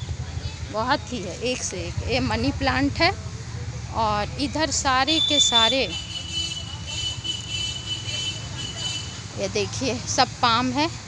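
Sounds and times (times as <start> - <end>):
distant road traffic rumble: 0.0 - 11.0.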